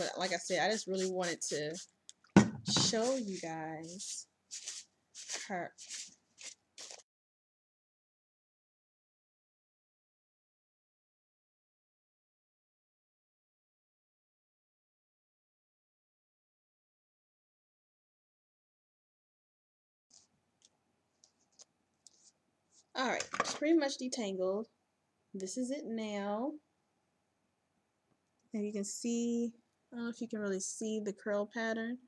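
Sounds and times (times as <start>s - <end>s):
faint ticks and swishes of hair: 0.0s - 1.9s, 2.8s - 7.0s.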